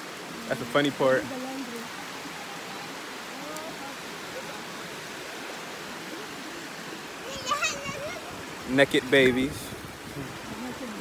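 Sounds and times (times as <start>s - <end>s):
river running over stones: 0.0s - 11.0s.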